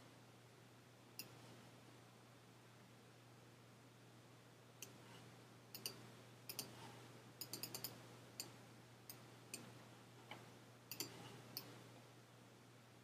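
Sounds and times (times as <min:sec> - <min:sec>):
faint low hum: 0:00.0 - 0:13.0
mouse buttons clicking: 0:05.8 - 0:06.8, 0:07.4 - 0:09.7, 0:10.3 - 0:11.7.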